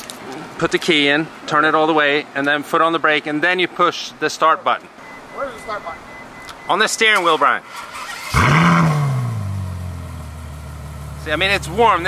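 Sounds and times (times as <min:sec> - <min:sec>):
car engine idling: 0:08.0 - 0:12.0.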